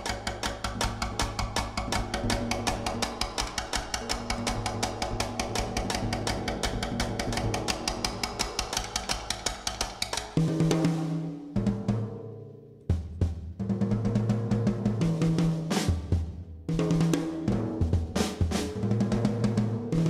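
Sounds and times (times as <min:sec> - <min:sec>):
drum kit played with sticks: 0:00.0 - 0:20.0.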